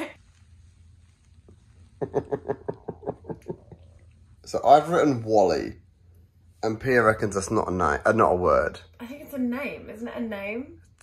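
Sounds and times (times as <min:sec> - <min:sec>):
person laughing: 0:02.0 - 0:03.8.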